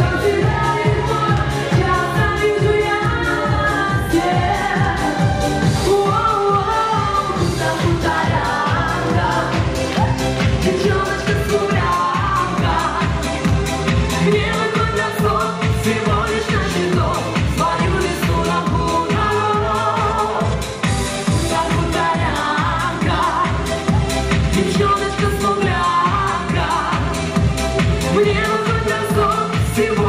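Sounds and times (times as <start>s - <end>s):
man and woman singing: 0.0s - 13.4s, 14.1s - 20.7s, 21.4s - 27.4s, 28.1s - 30.0s
amplified pop accompaniment: 0.0s - 30.0s
electronic backing track: 0.0s - 30.0s.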